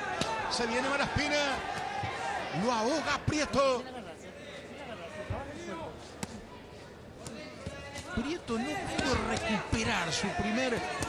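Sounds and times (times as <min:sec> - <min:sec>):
crowd and corner voices: 0:00.0 - 0:11.0.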